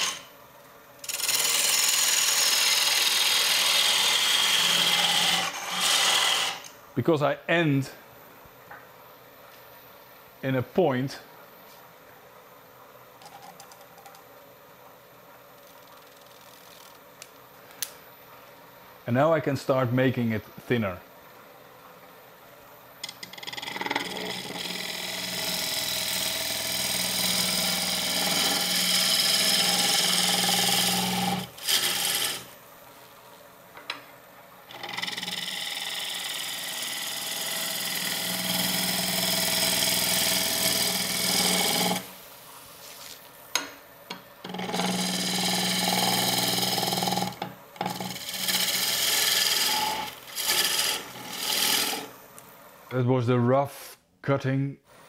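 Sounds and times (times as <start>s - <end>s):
lathe gouge scraping wood: 1.1s - 6.7s, 23.4s - 32.4s, 34.7s - 42.1s, 44.4s - 52.1s.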